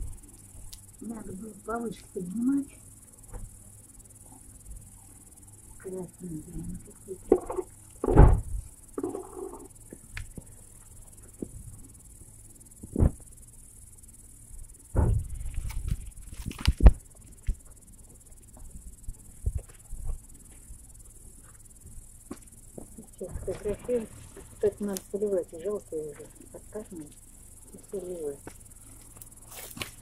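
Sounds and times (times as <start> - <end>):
crickets chirping: 0.0 - 30.0
thumps and rustles on ground: 7.3 - 9.2, 14.9 - 17.8, 29.5 - 30.0.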